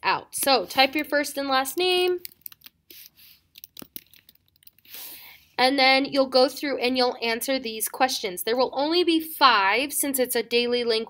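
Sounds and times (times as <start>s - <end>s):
keyboard typing: 1.8s - 5.0s.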